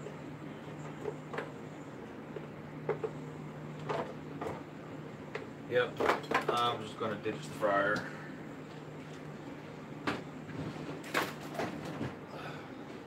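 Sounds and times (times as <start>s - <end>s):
steady low hum: 0.0s - 13.0s
man talking: 5.7s - 8.1s.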